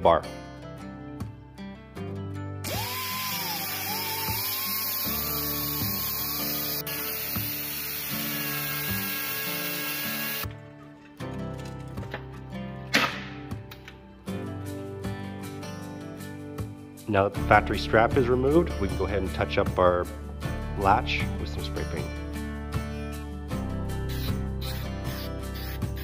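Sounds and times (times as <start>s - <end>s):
background music: 0.0s - 26.0s
die grinder grinding metal: 2.7s - 10.5s.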